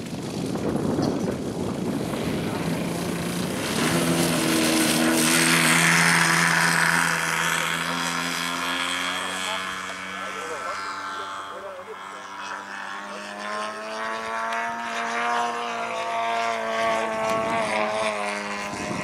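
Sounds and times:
model plane petrol engine: 0.0s - 19.0s.

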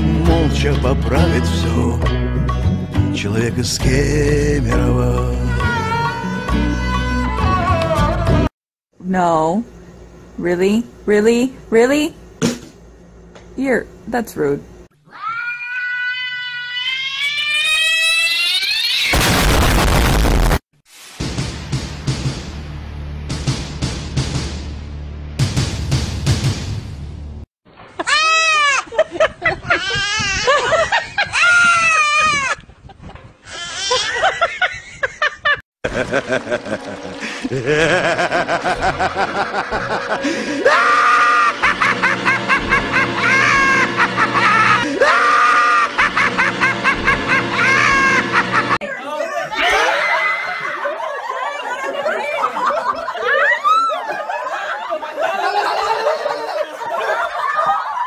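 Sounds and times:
cat yowling: 15.1s - 19.1s
person laughing in squeals: 28.0s - 36.6s, 37.2s - 48.8s, 49.5s - 51.6s, 53.1s - 58.0s.

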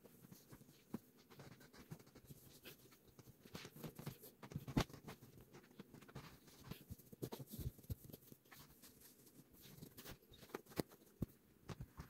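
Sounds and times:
fabric rustling and scratching: 0.0s - 12.0s.

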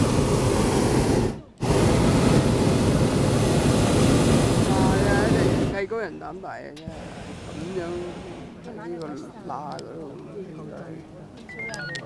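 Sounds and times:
people talking indistinctly: 4.6s - 12.0s
high beeps changing pitch: 11.5s - 12.0s.

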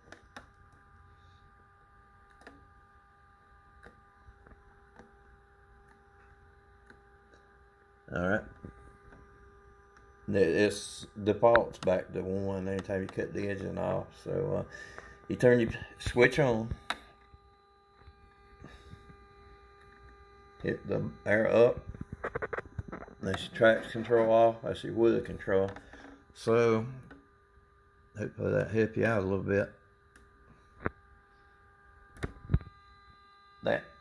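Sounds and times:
faint steady hum: 0.0s - 34.0s.

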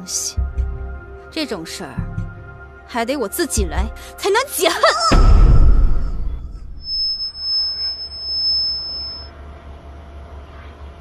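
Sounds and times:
low rumble: 5.1s - 8.2s
high-pitched electronic tone: 5.9s - 9.3s.

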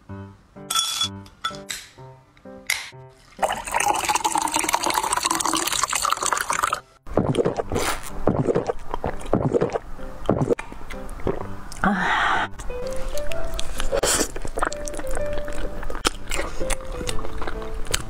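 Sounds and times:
background music with plucked notes: 0.0s - 3.7s, 6.6s - 18.0s
sharp clinks: 0.7s - 1.9s
cola pouring over ice: 3.2s - 6.9s.

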